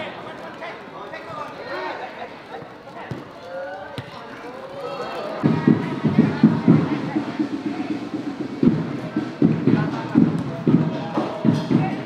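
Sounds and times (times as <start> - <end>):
ball being kicked: 3.1 - 3.3.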